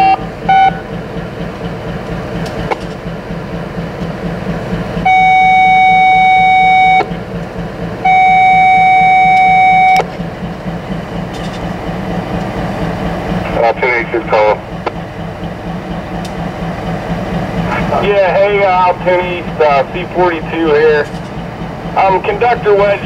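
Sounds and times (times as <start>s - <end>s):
loud single-pitched tone: 0.0s - 0.8s, 5.0s - 7.1s, 8.0s - 10.1s
short beeps: 0.0s - 0.8s, 5.1s - 7.1s, 8.0s - 10.1s
diesel locomotives idling: 0.0s - 23.0s.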